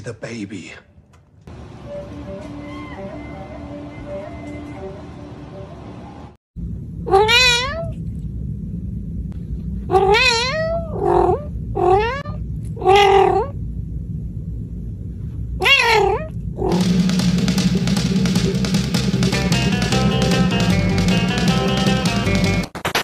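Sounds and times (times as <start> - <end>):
music: 1.8 - 5.8, 16.7 - 23.0
steady low hum: 3.4 - 22.6
cat meowing: 7.1 - 8.0, 9.9 - 13.6, 15.6 - 16.3.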